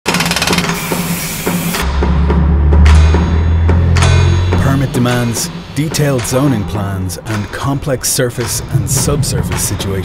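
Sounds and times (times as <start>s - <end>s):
hammer drill boring into concrete: 0.1s - 1.8s
music with a regular beat: 0.2s - 10.0s
deep bass note: 1.8s - 7.4s.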